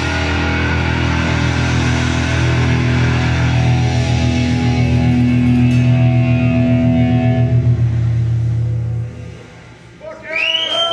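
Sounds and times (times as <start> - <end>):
rock guitars sustained chord: 0.0 - 9.9.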